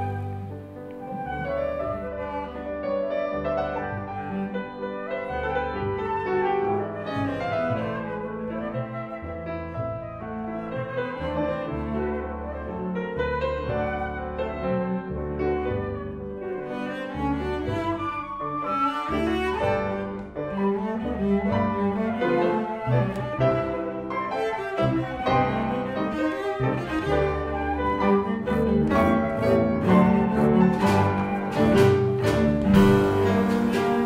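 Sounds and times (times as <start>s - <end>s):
cello: 0.0s - 34.0s
flute: 0.0s - 34.0s
piano: 0.0s - 34.0s.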